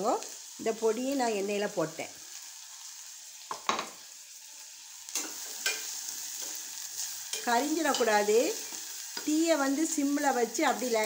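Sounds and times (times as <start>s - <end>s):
food sizzling in pan: 0.0s - 11.0s.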